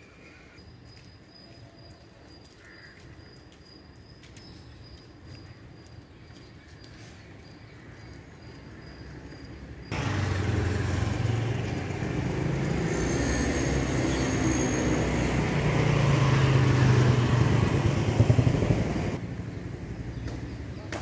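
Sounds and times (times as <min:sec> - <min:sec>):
vehicle engine running: 0:09.9 - 0:19.3.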